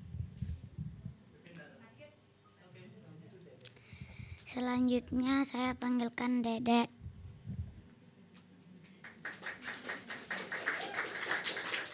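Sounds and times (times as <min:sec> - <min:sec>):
audience applauding: 0:09.0 - 0:11.9.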